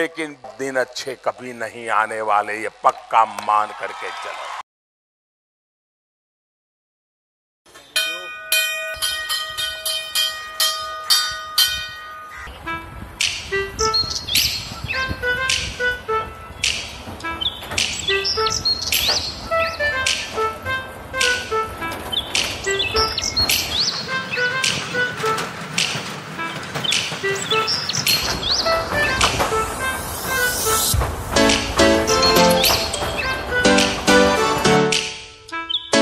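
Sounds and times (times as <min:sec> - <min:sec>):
metal bell ringing: 0:08.0 - 0:12.5
music with high chirping: 0:12.3 - 0:36.0.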